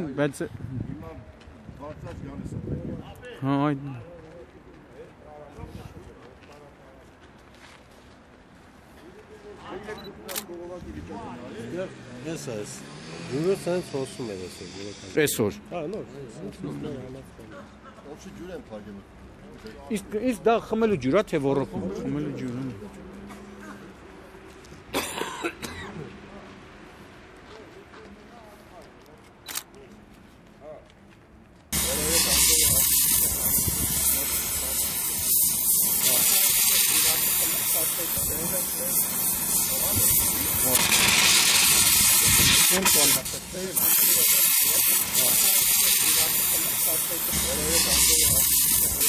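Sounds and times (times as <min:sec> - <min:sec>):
men talking: 0:00.0 - 0:07.2, 0:08.9 - 0:26.6, 0:31.7 - 0:49.0
gas torch hissing: 0:12.3 - 0:15.4, 0:31.7 - 0:49.0.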